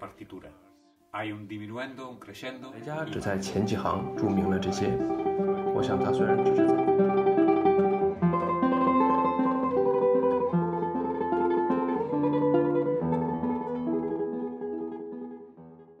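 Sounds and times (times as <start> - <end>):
solo plucked guitar: 2.3 - 16.0.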